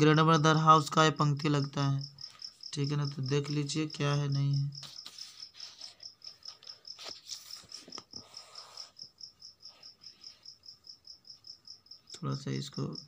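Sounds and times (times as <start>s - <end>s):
cricket chirping: 0.0s - 13.0s
paper rustling: 4.8s - 9.0s.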